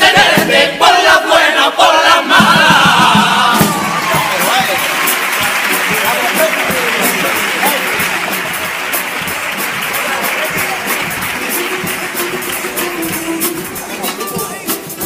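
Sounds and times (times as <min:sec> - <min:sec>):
audience clapping: 0:03.6 - 0:14.6
guitars playing: 0:03.6 - 0:15.0.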